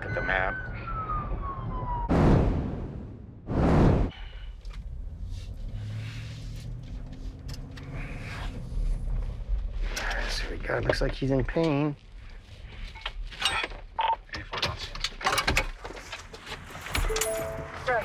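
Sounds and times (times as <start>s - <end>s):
emergency vehicle siren wailing: 0.0s - 2.1s
vehicle cabin hum: 4.2s - 11.7s.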